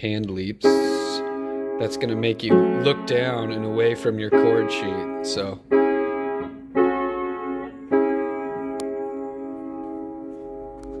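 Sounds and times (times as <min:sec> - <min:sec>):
piano chords ringing: 0:00.4 - 0:11.0.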